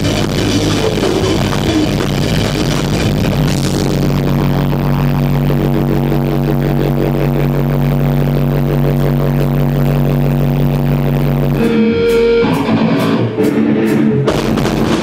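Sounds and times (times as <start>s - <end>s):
electric guitars and bass chord: 0.0s - 15.0s.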